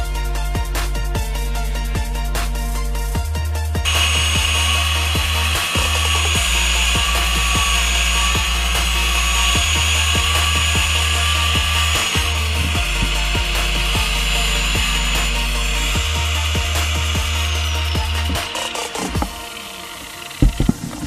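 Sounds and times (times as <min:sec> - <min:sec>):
background music with deep bass: 0:00.0 - 0:21.0
angle grinder cutting steel: 0:00.2 - 0:21.0.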